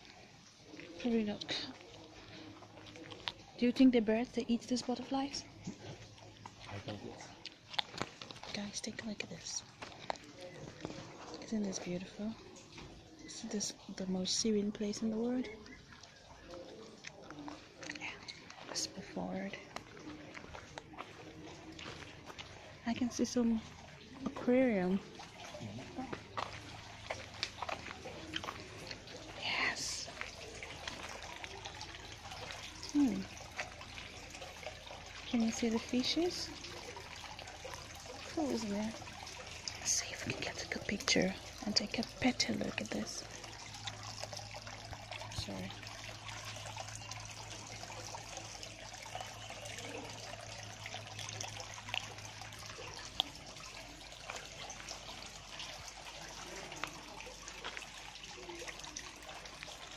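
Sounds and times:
water drips: 0.0s - 59.9s
water trickling into pond: 0.0s - 59.9s.

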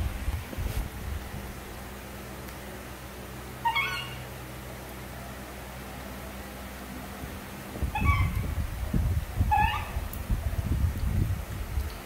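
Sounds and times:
low rumbling noise: 0.0s - 12.0s
monkey squeaking: 3.6s - 4.2s, 7.9s - 8.4s, 9.5s - 10.0s.

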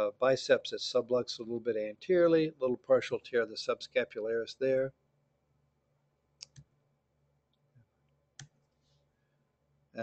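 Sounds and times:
computer mouse clicks: 6.4s - 6.7s, 8.4s - 8.7s.

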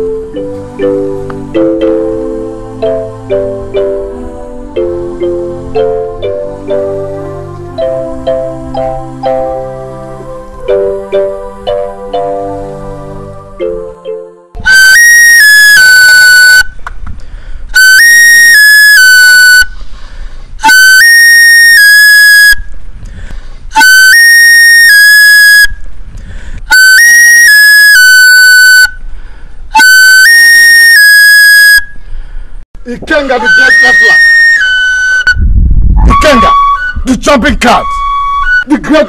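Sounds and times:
wooden flute playing: 0.0s - 16.7s, 17.8s - 19.7s, 20.6s - 22.6s, 23.7s - 25.7s, 26.7s - 29.0s, 29.7s - 31.9s, 33.3s - 38.7s.

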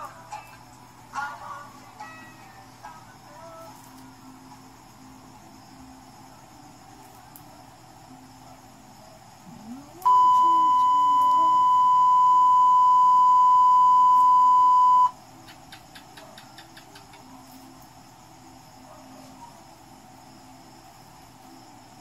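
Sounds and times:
high electronic beep tone: 10.0s - 15.2s.

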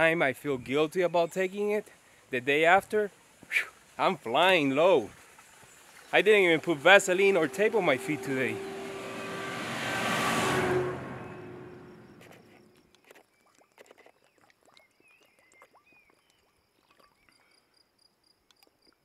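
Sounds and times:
car passing: 6.2s - 12.8s.

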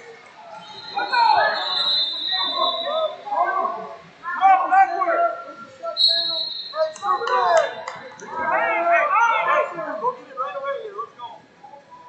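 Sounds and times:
people shouting: 0.6s - 10.8s.

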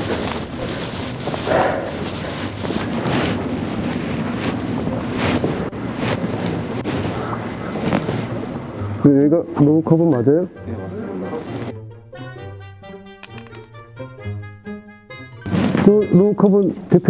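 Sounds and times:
rustling on microphone: 0.0s - 8.8s, 15.5s - 15.9s
steady rushing noise: 0.0s - 9.1s.

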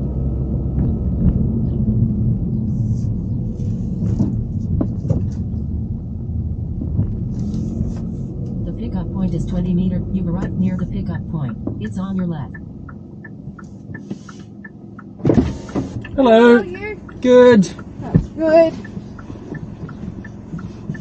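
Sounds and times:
car rumbling inside cabin: 0.0s - 21.0s.

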